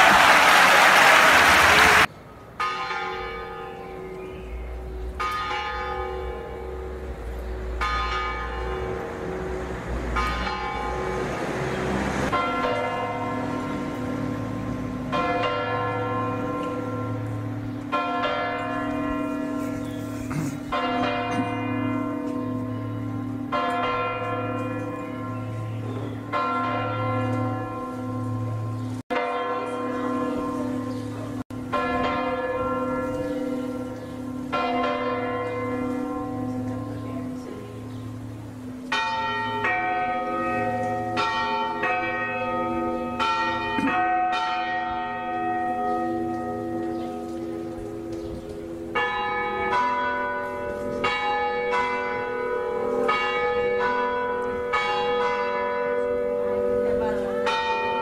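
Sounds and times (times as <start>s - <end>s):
church bells tolling: 0.0s - 58.0s.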